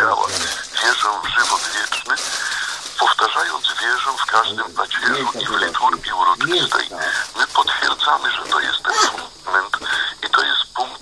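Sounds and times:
radio broadcast talk: 0:00.0 - 0:11.0.

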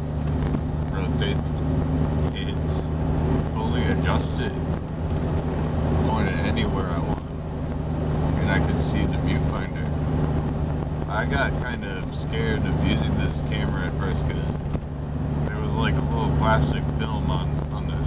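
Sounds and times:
car engine and road noise: 0:00.0 - 0:18.0
man talking: 0:00.9 - 0:01.6, 0:02.3 - 0:02.9, 0:03.5 - 0:04.7, 0:06.0 - 0:07.3, 0:08.4 - 0:10.0, 0:11.1 - 0:14.6, 0:15.5 - 0:18.0.

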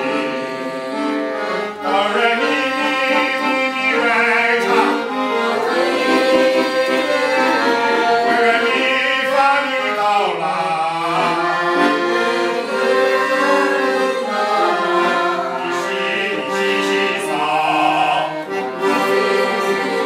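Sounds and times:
man singing classically: 0:00.0 - 0:20.0
piano accordion chords: 0:00.0 - 0:20.0.

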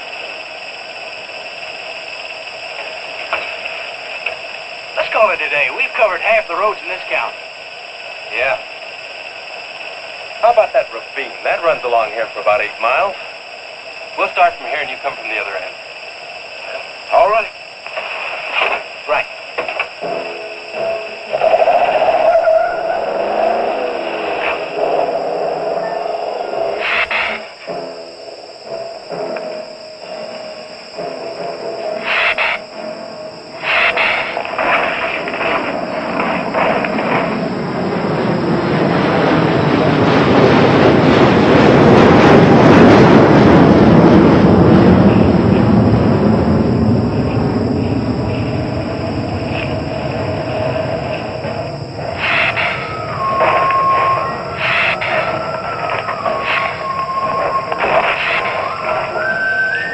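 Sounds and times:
dramatic film score: 0:00.0 - 0:59.9
long dense sound: 0:00.0 - 0:59.9.

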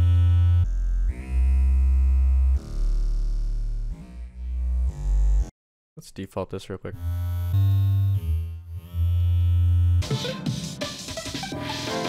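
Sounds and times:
synth bass line: 0:00.0 - 0:05.5, 0:07.0 - 0:12.0
keyboard chords: 0:10.0 - 0:12.0.

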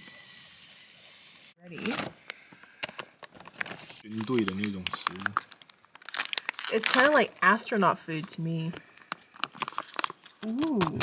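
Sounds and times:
packaging bag crinkling: 0:02.8 - 0:07.6, 0:08.8 - 0:11.0.

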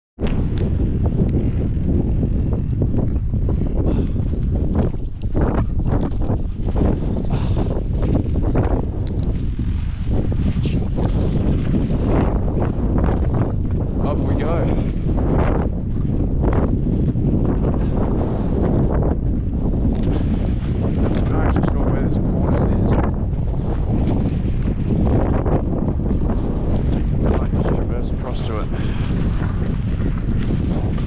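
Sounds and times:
wind buffeting microphone: 0:00.2 - 0:31.0.

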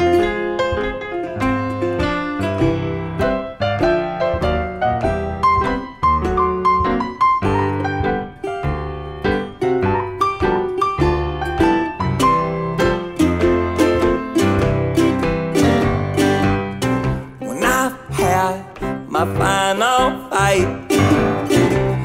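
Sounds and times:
blues piano run: 0:00.0 - 0:22.0.

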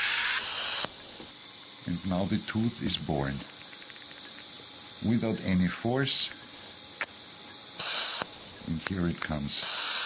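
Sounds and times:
surgical handpiece hissing: 0:02.8 - 0:10.0.

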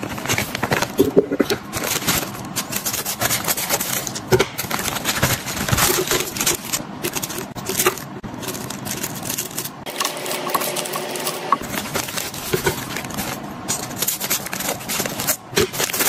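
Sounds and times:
plastic wrappers crinkling: 0:00.0 - 0:16.0.

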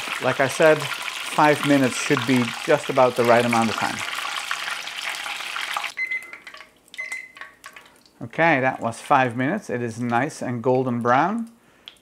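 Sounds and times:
food sizzling in hot oil: 0:00.0 - 0:06.0
short high beeps: 0:06.0 - 0:06.4, 0:07.0 - 0:07.4.

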